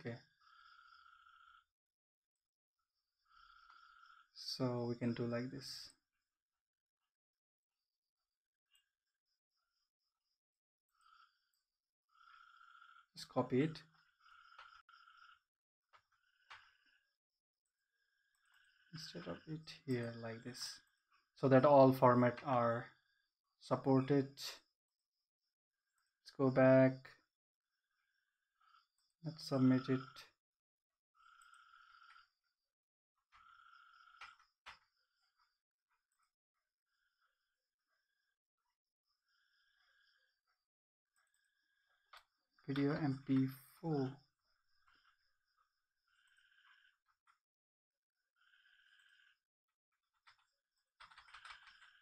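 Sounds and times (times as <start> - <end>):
soft steady tones: 48.2 - 52.0.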